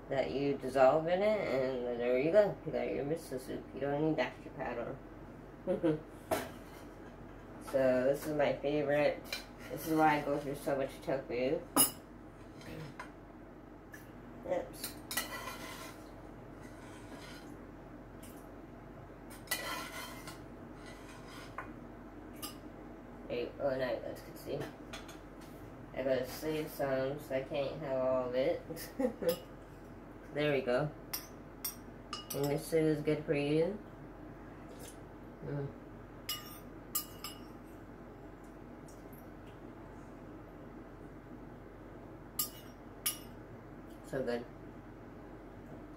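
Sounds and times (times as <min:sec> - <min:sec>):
steady low hum: 0:00.0 - 0:45.9
metal spoon clinking against bowl: 0:31.1 - 0:32.6, 0:36.3 - 0:37.6, 0:42.4 - 0:43.3.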